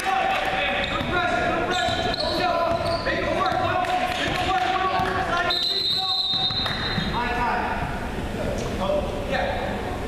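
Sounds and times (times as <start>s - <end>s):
players shouting: 0.0s - 6.5s
basketball bouncing on wooden floor: 2.6s - 3.7s
referee's whistle blast: 5.4s - 7.2s.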